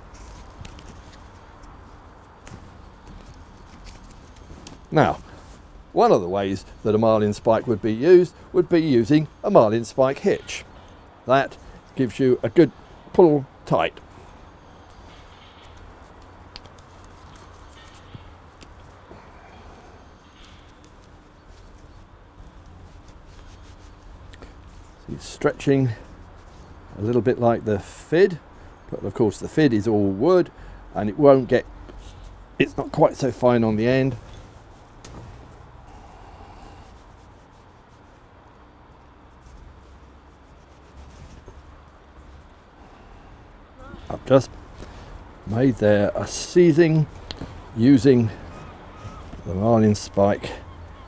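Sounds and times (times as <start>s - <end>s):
rope rustling: 0.0s - 27.2s, 31.8s - 51.0s
steady low hum: 31.6s - 51.0s
small scrapes: 39.3s - 42.9s.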